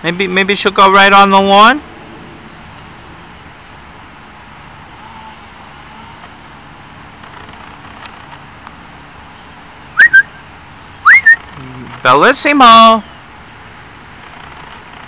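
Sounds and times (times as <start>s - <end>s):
person whistling two-note whistles: 10.0s - 10.4s, 11.1s - 11.4s.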